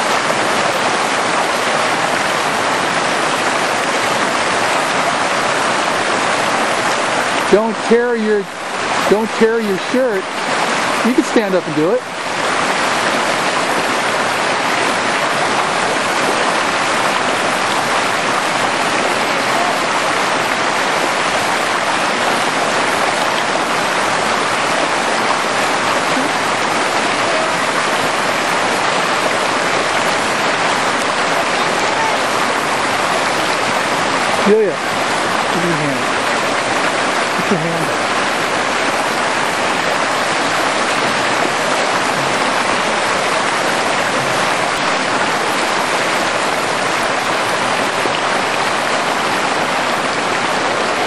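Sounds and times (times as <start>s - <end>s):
mountain stream rushing over rocks: 0.0s - 51.0s.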